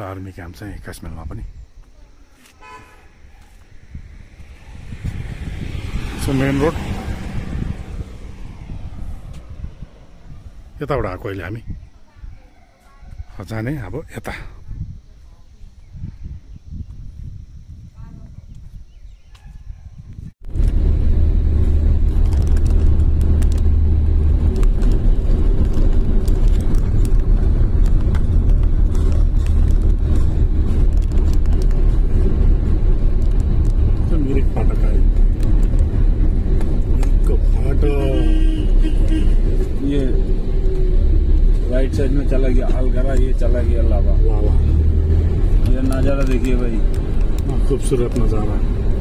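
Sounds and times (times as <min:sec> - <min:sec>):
moving vehicle rumble: 0:00.3 - 0:49.0
wind noise: 0:02.6 - 0:49.0.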